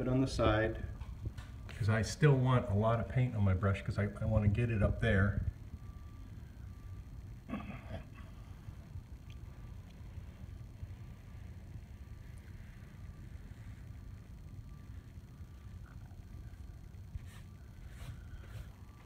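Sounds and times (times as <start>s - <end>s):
low steady hum: 0.0s - 19.0s
paintbrush strokes on wall: 17.1s - 19.0s.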